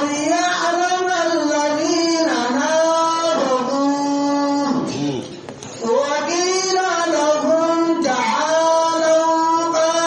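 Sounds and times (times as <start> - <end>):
man chanting recitation: 0.0 - 10.0.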